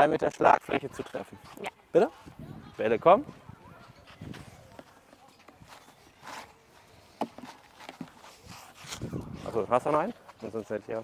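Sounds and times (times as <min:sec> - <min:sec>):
faint footsteps on clay court: 0:00.0 - 0:11.0.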